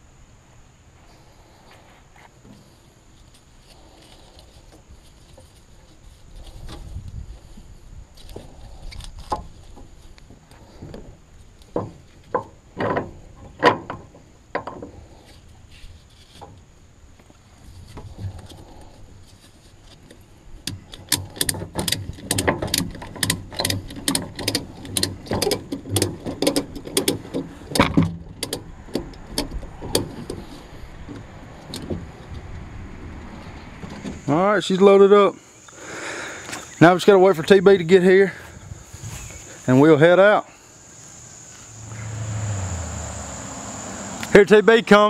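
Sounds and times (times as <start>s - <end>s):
insects buzzing: 28.6s - 45.0s
vehicle engine approaching: 40.8s - 45.0s.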